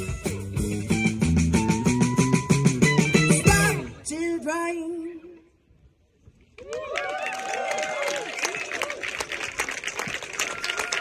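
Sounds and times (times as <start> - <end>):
crowd clapping: 6.6 - 11.0.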